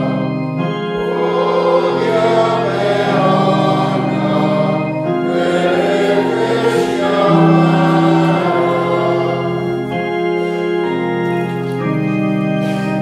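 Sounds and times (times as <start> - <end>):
congregation singing a hymn: 0.0 - 13.0
keyboard organ sound: 0.0 - 13.0.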